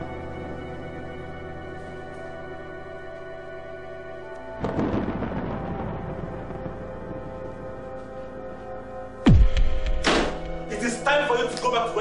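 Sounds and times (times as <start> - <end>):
suspenseful music: 0.0 - 12.0
deep hit with falling pitch: 9.3 - 10.6.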